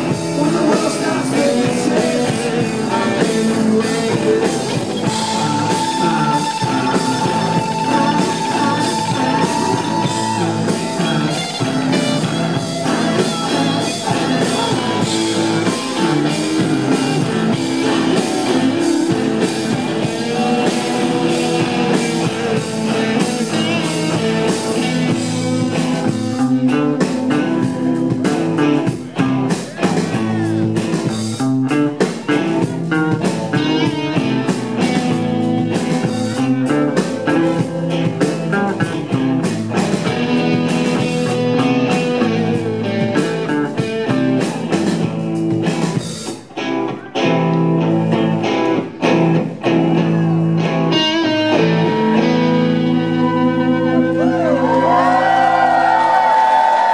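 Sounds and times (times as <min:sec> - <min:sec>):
bass guitar: 0:00.0 - 0:56.9
drums: 0:00.0 - 0:56.9
electric guitars: 0:00.0 - 0:56.9
sliding guitar notes: 0:00.0 - 0:56.9.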